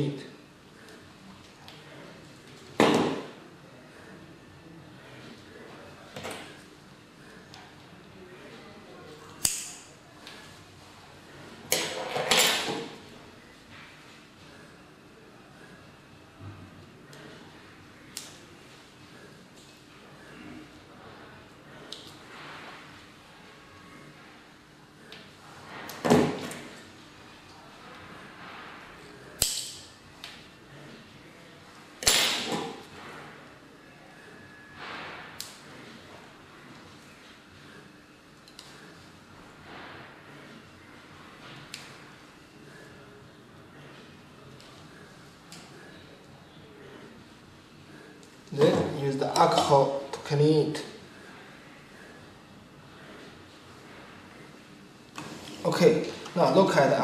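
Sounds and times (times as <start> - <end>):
sharp tool click: 9.4 - 9.8.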